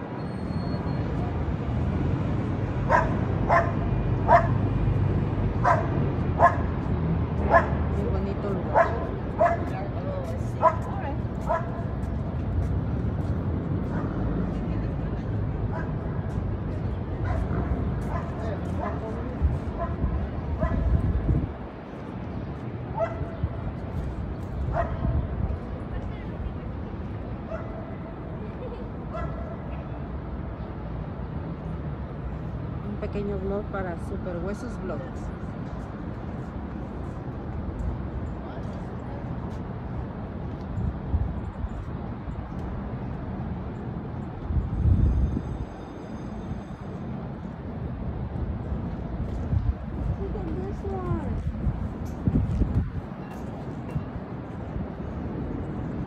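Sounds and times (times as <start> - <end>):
dog barking in high yaps: 2.9 - 4.6.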